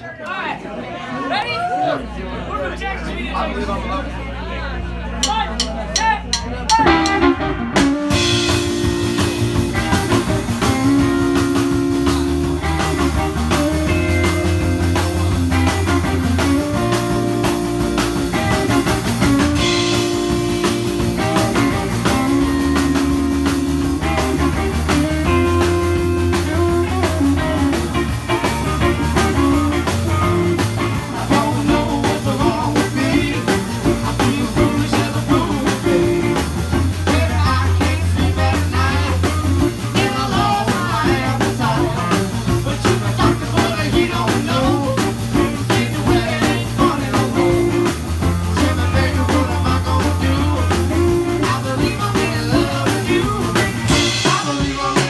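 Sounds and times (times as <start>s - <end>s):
electric blues band playing: 3.5s - 55.0s
drum strokes: 5.2s - 55.0s.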